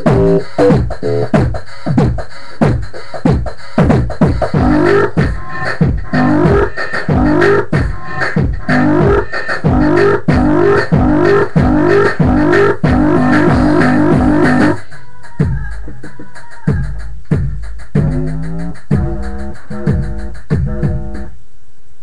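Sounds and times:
plucked bass riff: 0.0s - 0.8s
electronic drum hits: 0.0s - 14.8s.

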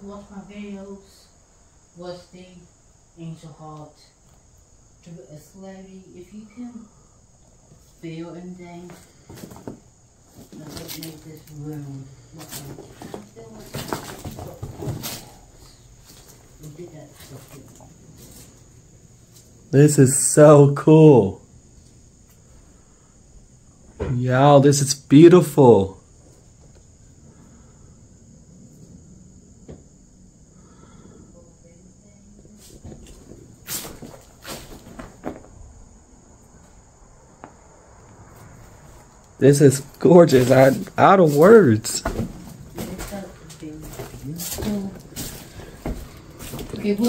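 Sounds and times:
crickets trilling: 0.0s - 47.0s
footsteps crunching on debris: 12.4s - 19.6s, 32.8s - 35.6s, 39.7s - 47.0s.

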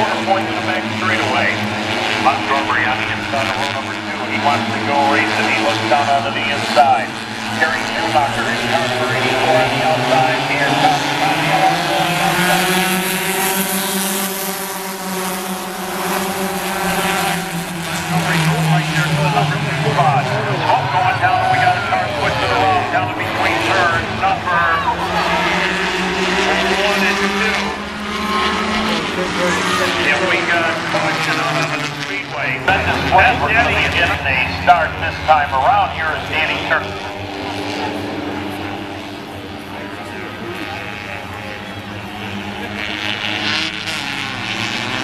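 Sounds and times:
race car engines passing: 0.0s - 45.0s.

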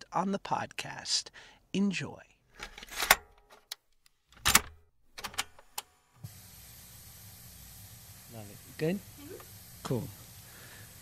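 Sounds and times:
faint room noise hiss: 5.5s - 11.0s.

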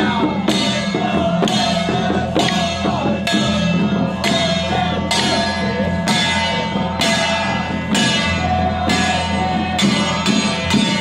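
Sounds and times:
ringing metallic percussion strikes: 0.0s - 11.0s.

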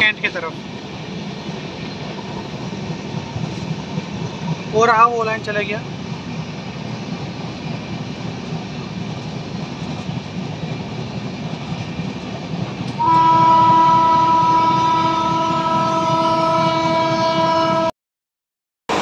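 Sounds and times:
train rumbling on track: 0.0s - 17.9s
locomotive horn blast: 13.0s - 17.9s.

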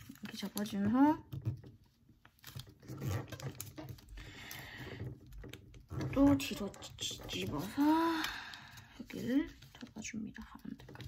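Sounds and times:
paper rustling: 5.5s - 11.0s.

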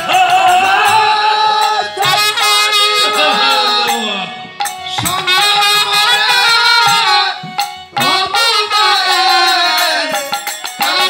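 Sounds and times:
sharp percussion strikes: 0.0s - 11.0s.

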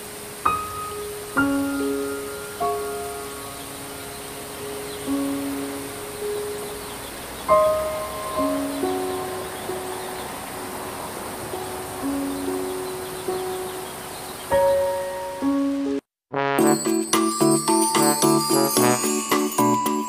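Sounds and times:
rain hiss: 0.0s - 16.0s, 17.0s - 19.8s
sparse piano notes and chords: 0.0s - 20.0s.

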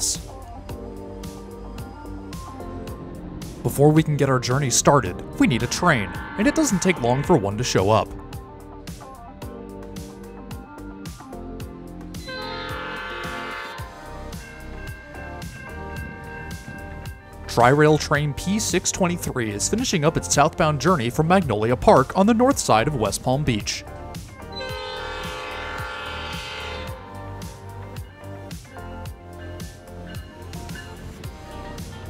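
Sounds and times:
background music with steady beat: 0.0s - 32.0s
diesel locomotive horn: 5.3s - 8.2s, 12.2s - 16.9s, 24.4s - 28.5s.

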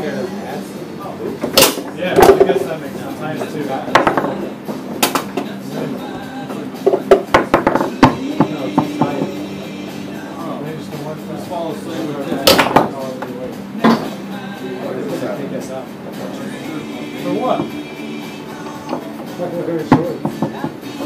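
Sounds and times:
foosball ball and men clacking: 1.3s - 9.8s, 12.2s - 14.4s, 16.8s - 21.0s.

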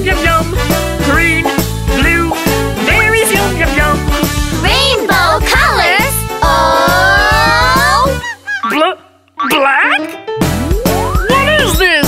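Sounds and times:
cartoon music: 1.0s - 12.0s
cartoon character voice: 4.6s - 8.3s.

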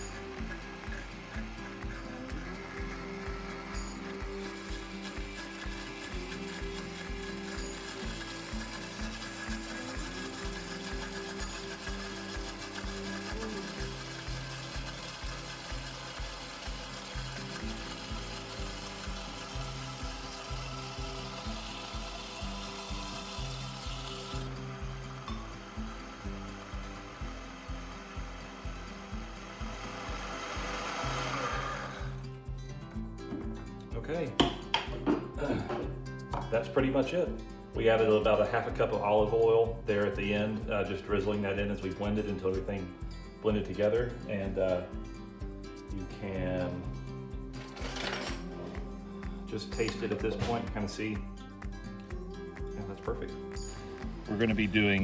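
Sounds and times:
blender running: 0.0s - 32.4s
background music with beat: 0.0s - 55.0s.

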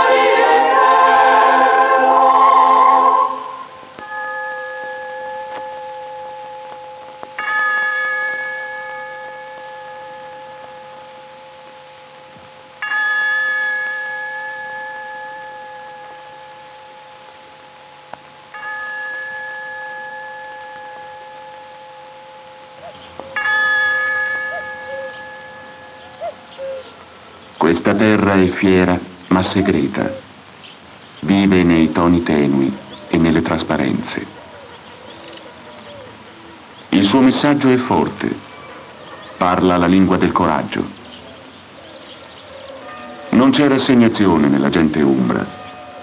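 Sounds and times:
bell ringing: 0.0s - 26.8s.

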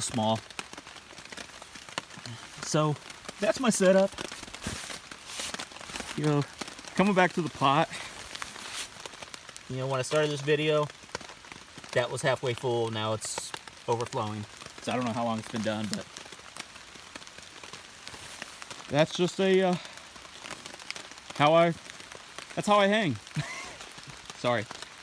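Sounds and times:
light rain pattering: 0.0s - 25.0s.

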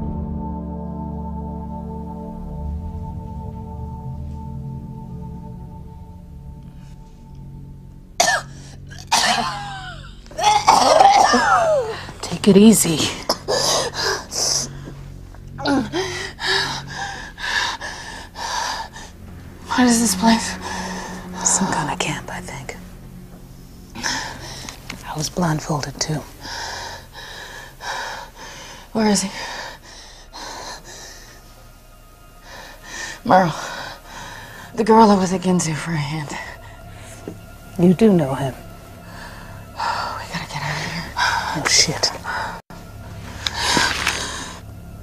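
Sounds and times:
low music drone: 0.0s - 45.0s
woman coughing hard: 8.2s - 12.1s, 13.0s - 14.0s
woman breathing hard: 13.4s - 19.4s, 20.5s - 21.7s, 23.9s - 25.0s, 26.2s - 34.8s.

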